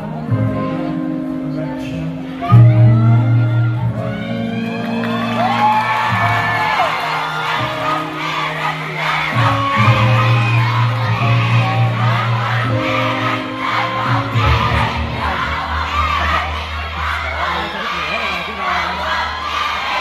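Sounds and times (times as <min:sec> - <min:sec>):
music over sound system: 0:00.0 - 0:19.0
fans screaming and whooping: 0:02.0 - 0:20.0
audience cheering: 0:03.0 - 0:20.0.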